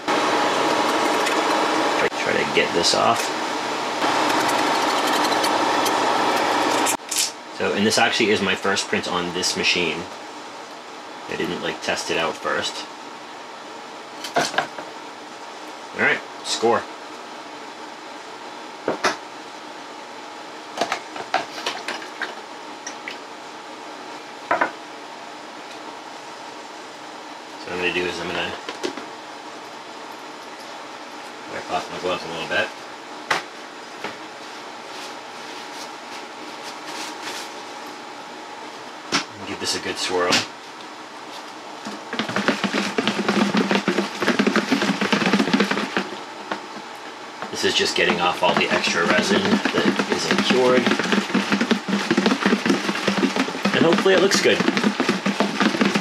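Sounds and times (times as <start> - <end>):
rattling and sloshing in plastic tub: 41.9 - 46.6, 47.6 - 56.0.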